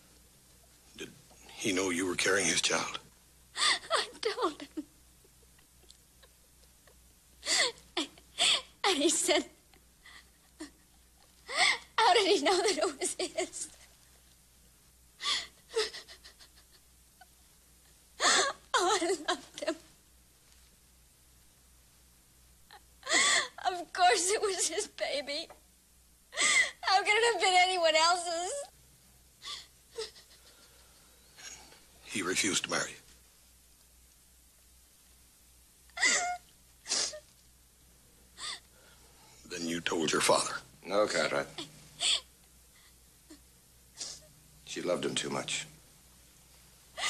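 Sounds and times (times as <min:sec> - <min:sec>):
woman sobbing: 0:03.6 - 0:13.9, 0:15.2 - 0:16.9, 0:18.2 - 0:19.8, 0:22.7 - 0:25.5, 0:26.3 - 0:28.7, 0:29.4 - 0:30.7, 0:35.9 - 0:37.3, 0:38.4 - 0:38.7, 0:41.6 - 0:42.3, 0:44.0 - 0:44.3.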